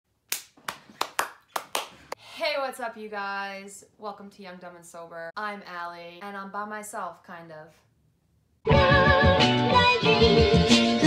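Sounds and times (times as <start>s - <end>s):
person clapping hands: 0.3s - 2.2s.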